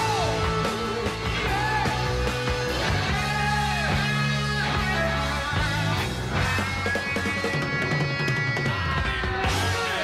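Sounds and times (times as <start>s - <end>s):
electric guitar bending held notes: 0.0s - 10.0s
held bass notes: 0.0s - 10.0s.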